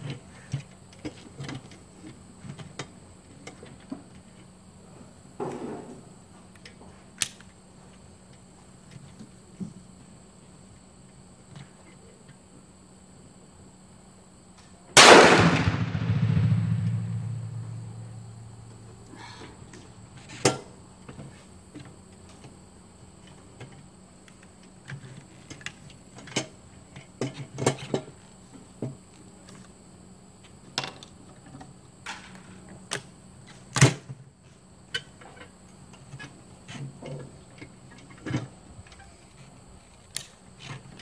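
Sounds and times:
shotgun shot with rumbling echo: 0:15.0 - 0:18.4.

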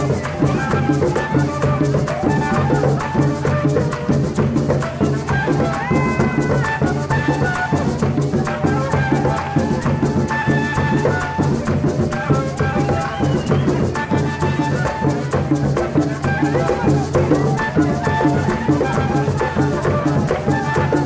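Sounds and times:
duct flute melody: 0:00.0 - 0:21.0
hand drums: 0:00.0 - 0:21.0
maraca shaken: 0:00.0 - 0:21.0.

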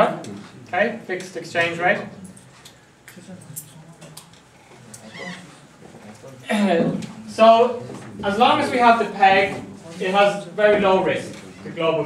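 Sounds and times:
faint high squeak: 0:05.0 - 0:05.5.

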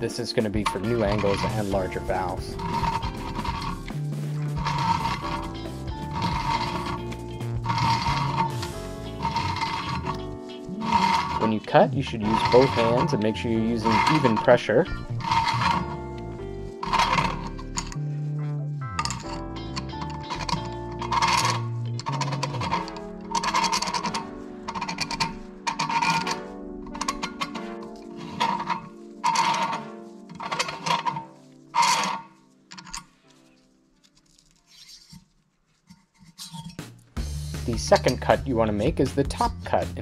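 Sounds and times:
background music: 0:00.0 - 0:34.6, 0:36.6 - 0:40.0
valve seat cutter scraping metal: 0:02.6 - 0:11.6.

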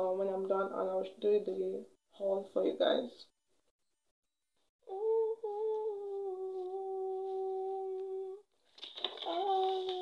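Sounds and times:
woman humming a long note: 0:04.9 - 0:08.4.

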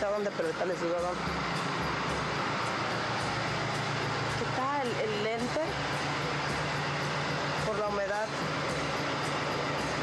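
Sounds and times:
vehicle running on road: 0:00.0 - 0:10.0.

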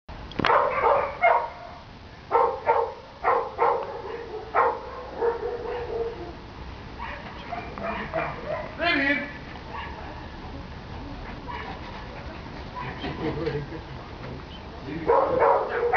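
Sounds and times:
dog barking: 0:00.5 - 0:06.4, 0:07.0 - 0:08.8, 0:09.7 - 0:10.3, 0:12.8 - 0:13.1, 0:15.0 - 0:15.9.

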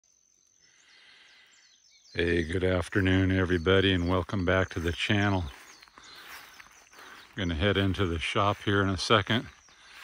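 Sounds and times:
faint bird chirps: 0:00.1 - 0:10.0.

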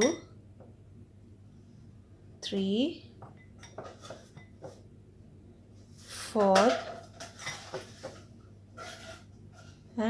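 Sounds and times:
kitchen utensils clicking and knocking: 0:06.4 - 0:08.2.

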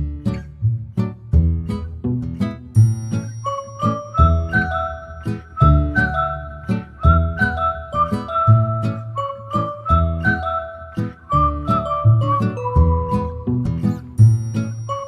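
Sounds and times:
background music with steady beat: 0:00.0 - 0:15.0.

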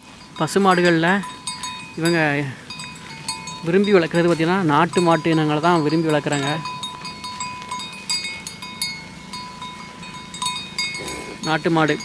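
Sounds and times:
cattle bells clanking: 0:00.0 - 0:12.0.

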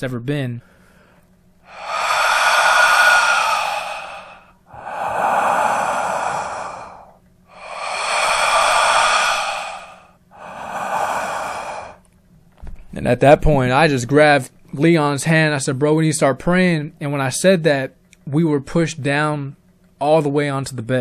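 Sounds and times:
loud heavy breathing: 0:00.6 - 0:12.0.

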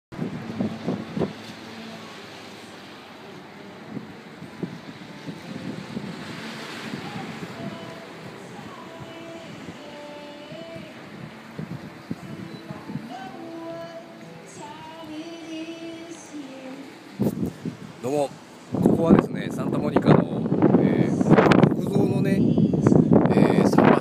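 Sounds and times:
wind buffeting microphone: 0:00.1 - 0:14.0, 0:17.0 - 0:24.0
ocean surf: 0:00.2 - 0:24.0
faint music with held melody: 0:01.3 - 0:20.1.

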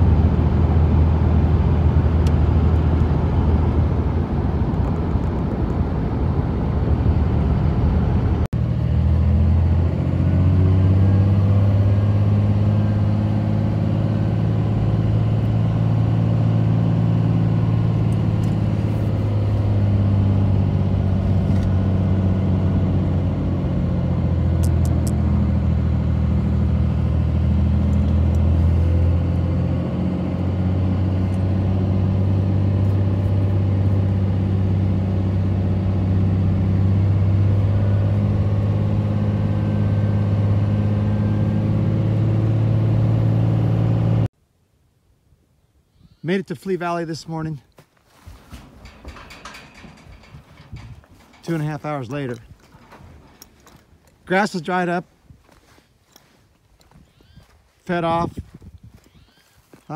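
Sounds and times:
vehicle engine drone: 0:00.0 - 0:44.3, 0:48.1 - 0:59.9
road noise: 0:00.0 - 0:44.5, 0:46.7 - 0:59.9
clicks and rattles: 0:48.4 - 0:54.3.

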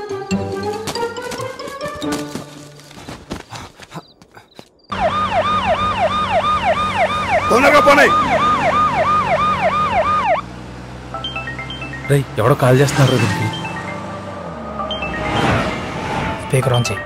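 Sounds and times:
electronic siren yelping: 0:04.9 - 0:10.4.

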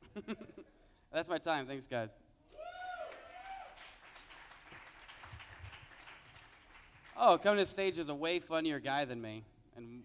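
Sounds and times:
small audience applauding: 0:02.8 - 0:07.5.

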